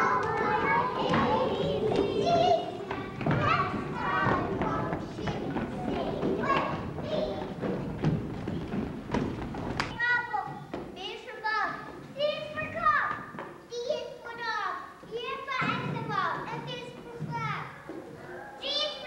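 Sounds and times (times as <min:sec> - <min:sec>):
young children's voices: 0:00.0 - 0:08.2, 0:09.8 - 0:19.0
voices chattering in a hall: 0:00.0 - 0:19.0
knocks and thumps: 0:00.1 - 0:11.0.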